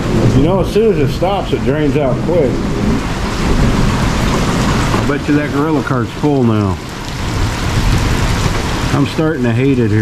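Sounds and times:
heavy rain: 0:00.0 - 0:10.0.

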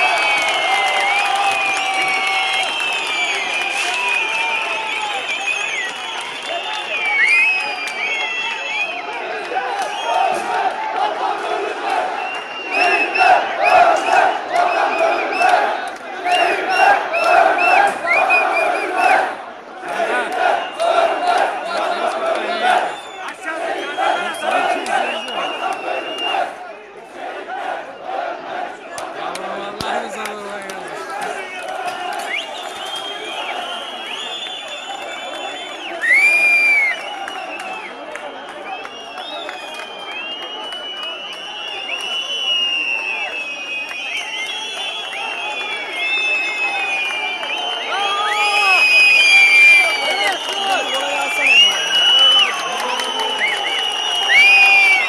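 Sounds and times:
crowd cheering: 0:00.0 - 0:55.0
crowd shouting and yelling: 0:00.0 - 0:55.0
crowd chanting: 0:04.9 - 0:55.0.

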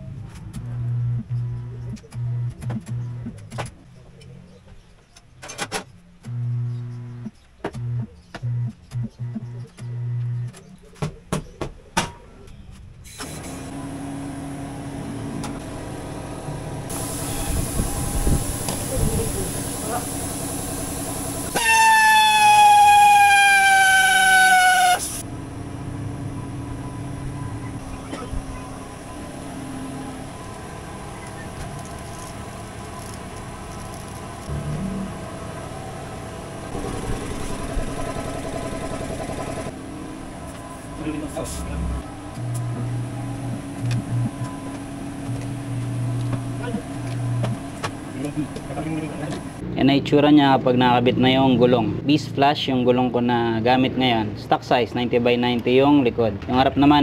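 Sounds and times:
steady mechanical hum: 0:00.0 - 0:04.4, 0:12.5 - 0:49.8
loud horn-like tone: 0:21.5 - 0:25.2.

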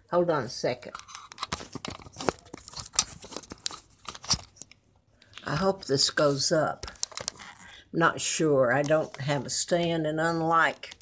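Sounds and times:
phone handling noise: 0:00.9 - 0:04.8.

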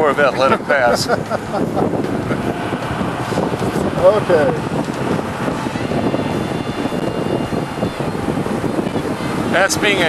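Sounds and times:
car engine running: 0:00.0 - 0:10.0
road and wind noise: 0:00.0 - 0:10.0.

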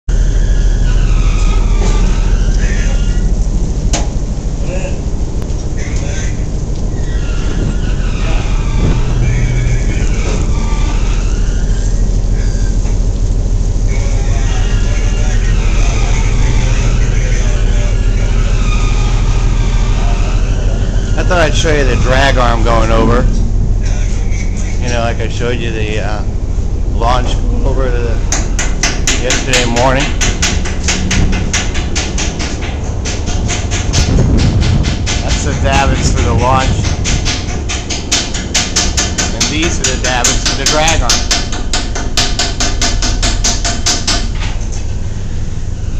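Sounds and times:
machinery drone with low hum: 0:00.1 - 0:45.9.

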